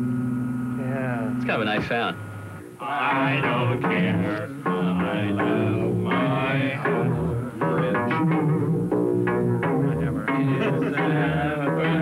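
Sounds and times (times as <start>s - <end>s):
plucked-sounding sampled notes: 3.4s - 12.0s
low repeating bass line: 3.5s - 12.0s.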